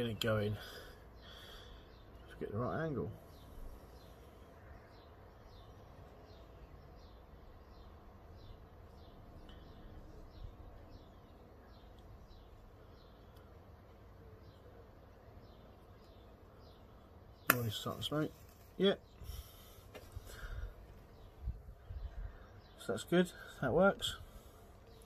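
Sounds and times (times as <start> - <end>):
bird chirping: 0.0 - 25.0.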